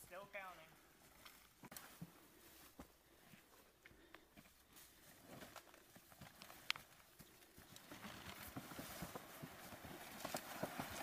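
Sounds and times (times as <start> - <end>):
leaves and twigs rustling: 4.5 - 11.0.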